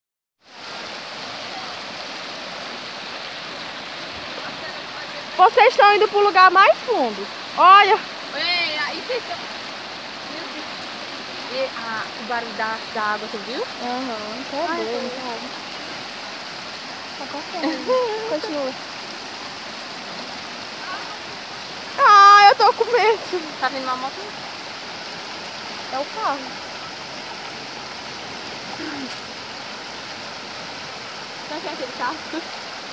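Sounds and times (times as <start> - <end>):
water rushing over rocks: 0.4 - 32.9.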